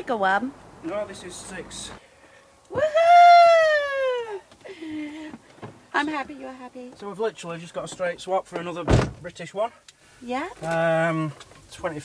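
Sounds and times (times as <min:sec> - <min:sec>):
person whooping: 0:02.7 - 0:04.5.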